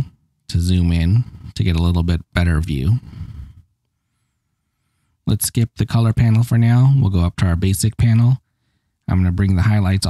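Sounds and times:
person speaking: 0.0 - 3.6, 5.3 - 8.4, 9.1 - 10.0.

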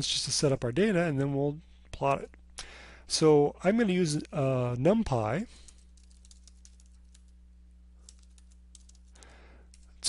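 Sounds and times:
low steady hum: 0.0 - 10.0
keyboard typing clicks: 5.7 - 7.4, 8.0 - 9.9.

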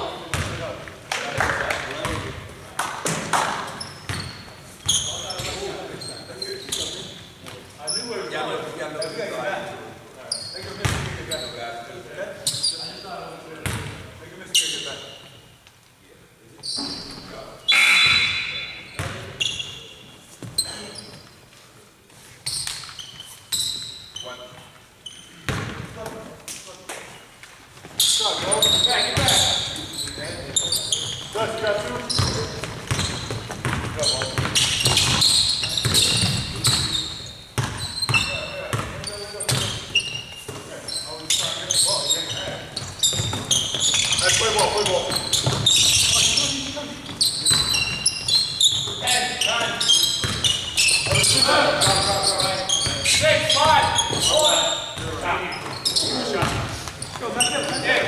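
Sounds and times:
basketball bouncing on hardwood floor: 10.8 - 11.2, 19.0 - 19.2, 25.5 - 25.9, 32.0 - 36.9, 37.6 - 39.8, 42.8 - 44.2, 45.1 - 46.4, 50.2 - 51.4
short high squeaks: 12.4 - 13.0, 16.6 - 21.4, 22.4 - 25.4, 28.0 - 31.4, 34.0 - 46.6, 47.2 - 56.3
players' voices: 27.9 - 58.0.

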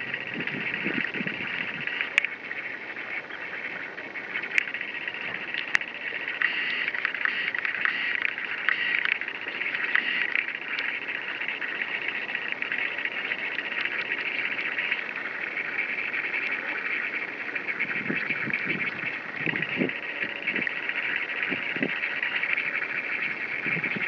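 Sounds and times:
insects buzzing chorus: 0.0 - 24.0.

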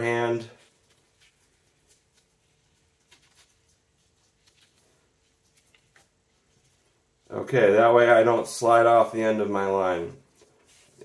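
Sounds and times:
rope rustling: 0.0 - 7.5, 10.1 - 11.0.

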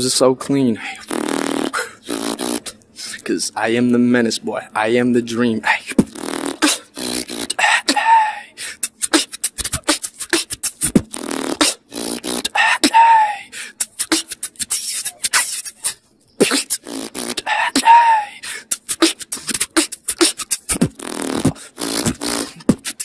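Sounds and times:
person beatboxing: 0.9 - 3.3, 5.7 - 23.0.

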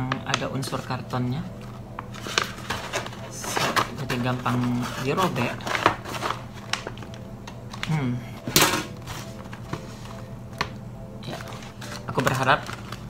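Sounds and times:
snack packet crinkling and rustling: 0.1 - 8.0, 11.2 - 13.0.

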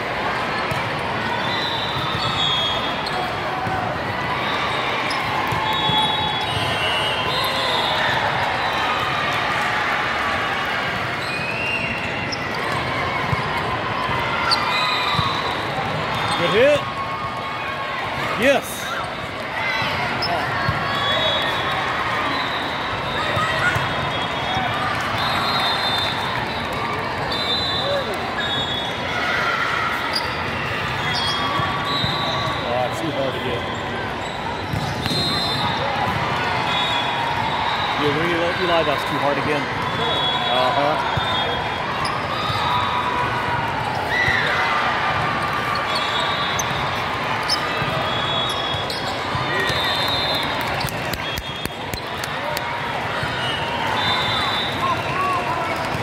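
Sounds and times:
many voices chattering and calling: 0.0 - 56.0.

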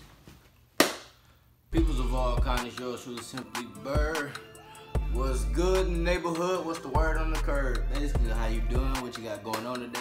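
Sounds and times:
hip-hop music with heavy bass: 1.7 - 10.0.

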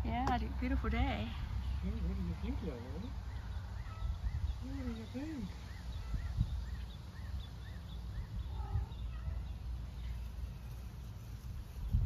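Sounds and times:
small bird chirping: 1.6 - 12.0
wind on microphone: 3.8 - 6.8, 11.4 - 12.0.

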